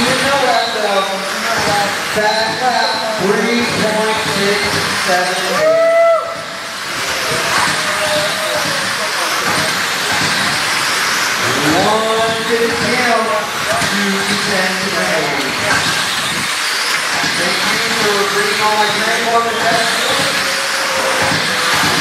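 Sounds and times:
toy car motors whining: 0.0s - 22.0s
voices talking: 0.0s - 22.0s.

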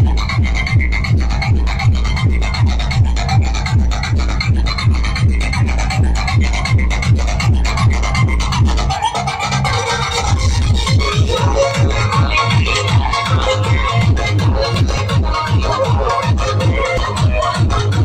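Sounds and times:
heavy bass-drum beat: 0.0s - 18.0s
loud electronic dance music: 0.0s - 18.0s.

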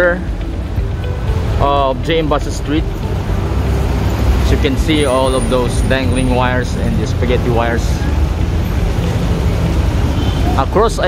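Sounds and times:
traffic rumble with hiss: 0.0s - 11.0s.

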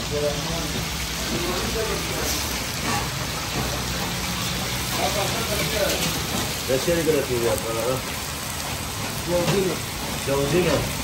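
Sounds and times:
meat sizzling in oil: 0.0s - 11.0s.

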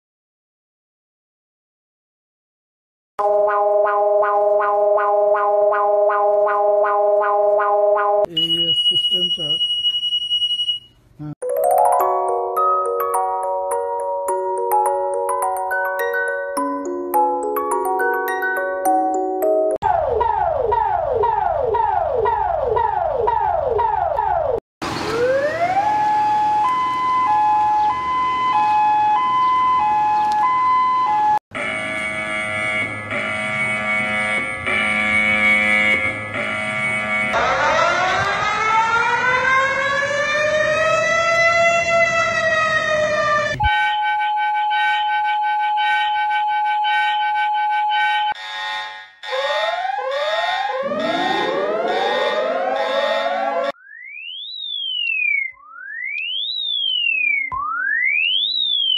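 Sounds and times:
rising and falling siren wail: 3.2s - 8.3s, 19.8s - 58.9s
pulsing alarm chord: 3.2s - 9.0s, 30.8s - 39.5s, 43.7s - 58.9s
fast sweeping siren: 3.2s - 10.8s, 19.8s - 58.9s
steady alarm tone: 3.2s - 10.9s, 18.6s - 41.4s, 43.6s - 58.9s
two-note alarm beeps: 3.2s - 11.0s, 50.4s - 58.9s
rapid upward sweeping tones: 49.9s - 53.8s.

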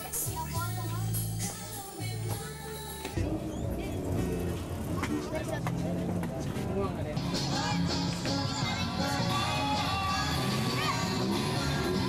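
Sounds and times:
street traffic noise: 0.0s - 12.0s
background music: 7.2s - 12.0s.

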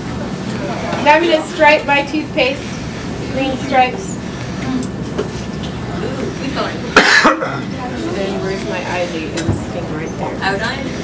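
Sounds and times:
classroom background rumble: 0.0s - 11.0s.

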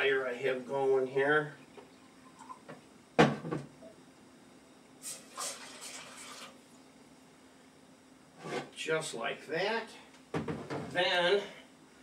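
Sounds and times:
water pouring: 5.0s - 6.6s.

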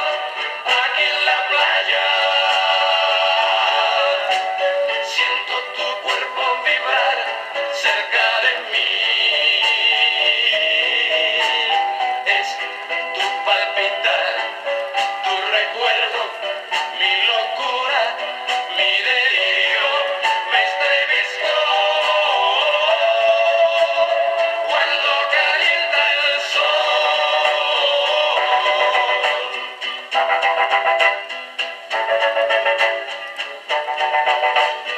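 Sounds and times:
men singing ballad on record: 0.0s - 29.9s.

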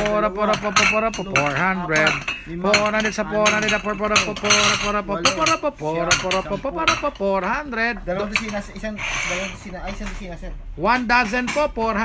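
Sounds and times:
plates clinking: 0.0s - 12.0s.

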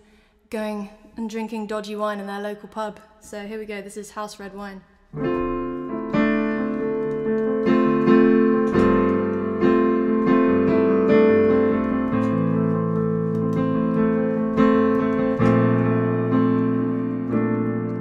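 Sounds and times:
digital piano chords: 5.1s - 18.0s.

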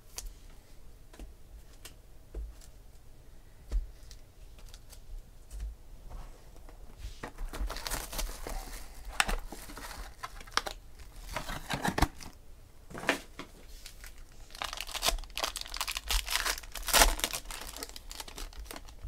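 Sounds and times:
plastic wrapping crinkling: 7.3s - 12.4s, 13.6s - 19.0s.

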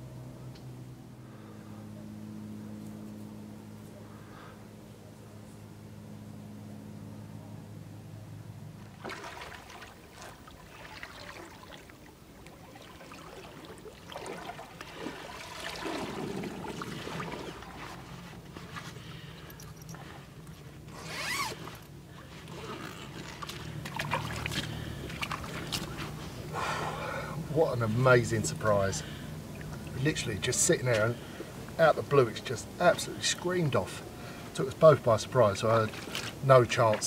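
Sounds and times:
water sloshing: 8.8s - 37.0s
zip pulled in rasping strokes: 20.9s - 21.9s.

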